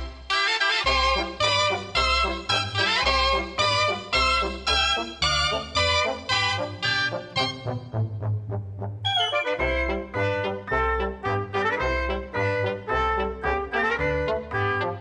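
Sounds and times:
shawms playing melody: 0:00.0 - 0:08.0, 0:09.0 - 0:15.0
trumpets: 0:00.0 - 0:08.2, 0:09.0 - 0:15.0
trombone: 0:00.0 - 0:15.0
double bass: 0:00.9 - 0:15.0.

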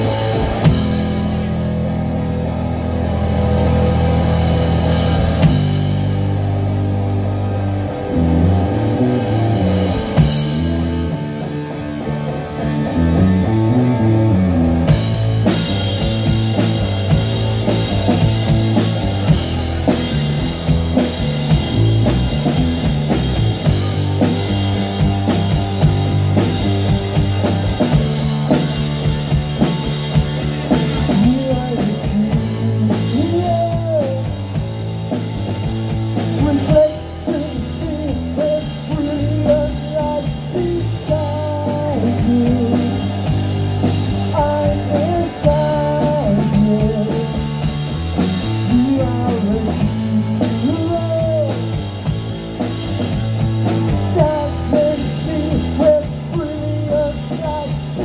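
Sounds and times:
punk rock band playing: 0:00.0 - 0:58.0.

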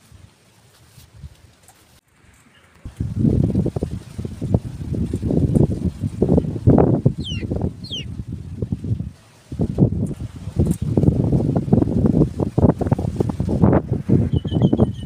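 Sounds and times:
wind buffeting microphone: 0:02.8 - 0:15.0
birds chirping: 0:07.1 - 0:08.2, 0:14.3 - 0:15.0
bird repeated short notes: 0:07.2 - 0:08.1.

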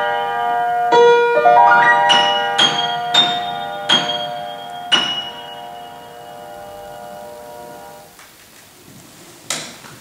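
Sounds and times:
piano notes over held chord: 0:00.0 - 0:08.1.

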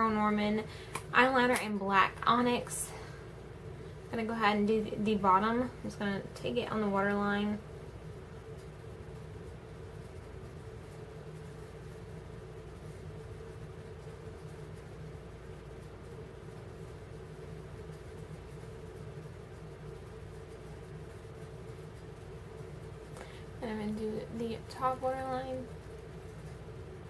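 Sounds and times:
faint constant tone: 0:00.0 - 0:27.0
steady background hum: 0:00.0 - 0:27.0.

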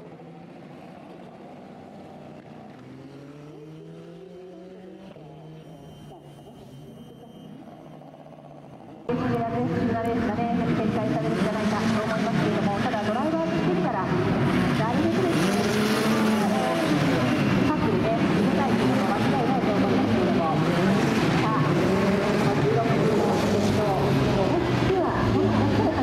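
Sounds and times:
race car engines revving: 0:00.0 - 0:26.0
race cars passing by: 0:00.0 - 0:26.0.

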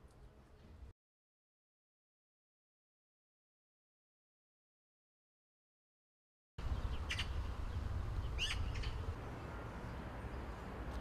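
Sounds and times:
high bird chirps: 0:06.8 - 0:09.0.

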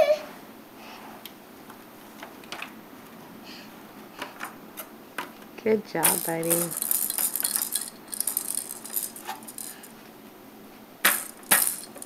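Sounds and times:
plastic baby toy rattling: 0:06.0 - 0:09.9, 0:11.0 - 0:12.0.

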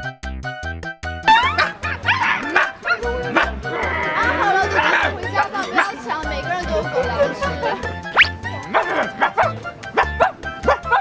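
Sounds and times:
upbeat background music: 0:00.0 - 0:11.0
puppy yipping and whining: 0:08.2 - 0:11.0.

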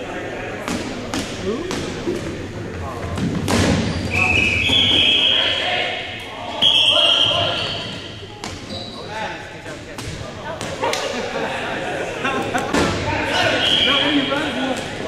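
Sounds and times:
shrill steady tone: 0:06.6 - 0:08.0
players calling out: 0:10.8 - 0:15.0.

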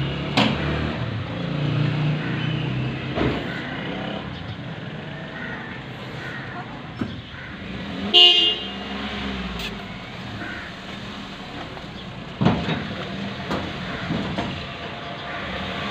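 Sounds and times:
street traffic hum: 0:00.0 - 0:15.9
vehicle horn toot: 0:08.0 - 0:09.0.

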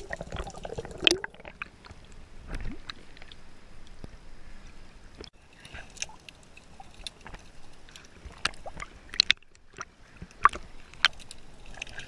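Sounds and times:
sharp clicks and knocks underwater: 0:05.2 - 0:12.0.

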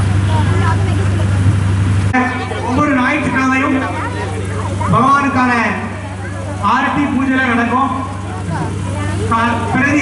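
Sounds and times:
loud steady low hum: 0:00.0 - 0:10.0
girl talking into microphone: 0:00.3 - 0:01.6.

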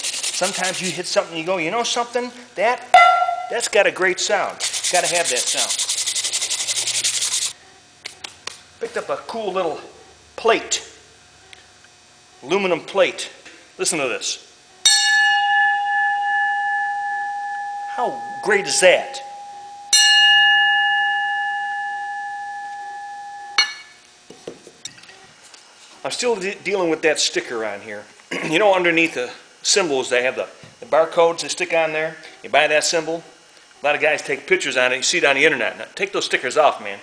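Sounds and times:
sandpaper rubbing on metal: 0:00.0 - 0:01.2, 0:04.6 - 0:07.6
metal plate ringing: 0:02.9 - 0:03.8, 0:14.9 - 0:24.0.

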